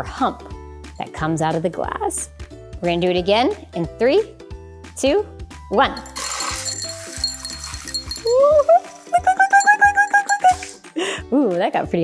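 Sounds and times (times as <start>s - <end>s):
light background music: 0.0s - 12.0s
metal ball chain rattling: 5.9s - 10.7s.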